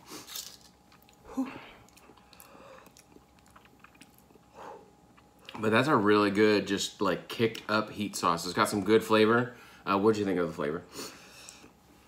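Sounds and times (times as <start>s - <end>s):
lip smacks and mouth clicks: 1.8s - 4.4s.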